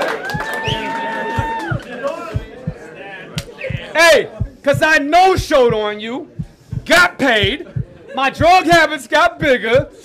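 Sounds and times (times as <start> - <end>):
faint voices: 0.6 - 8.8
dull low thumps: 0.7 - 10.0.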